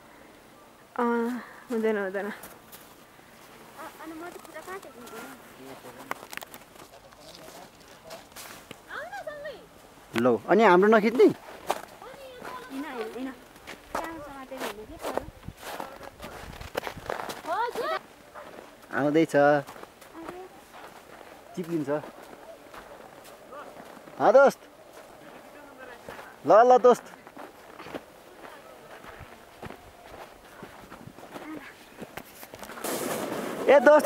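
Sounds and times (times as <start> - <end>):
footsteps crunching through snow: 1.7 - 34.0.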